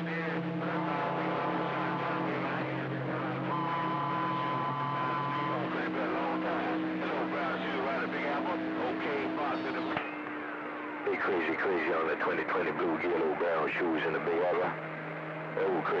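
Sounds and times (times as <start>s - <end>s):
garbled overlapping radio voices: 0.0s - 14.8s, 15.5s - 16.0s
higher whistle: 3.5s - 5.7s
heterodyne whistles: 3.5s - 5.8s.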